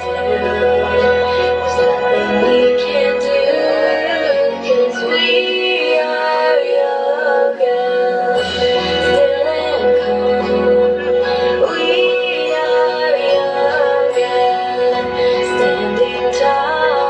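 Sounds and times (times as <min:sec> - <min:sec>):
high singing voice: 0:00.0 - 0:17.0
instrumental backing: 0:00.0 - 0:17.0.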